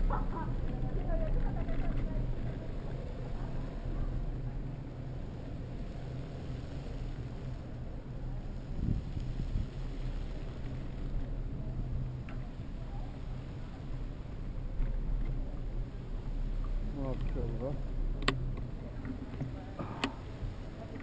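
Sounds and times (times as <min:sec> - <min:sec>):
bicycle tyres on street: 0:00.0 - 0:21.0
wind rumble: 0:00.0 - 0:21.0.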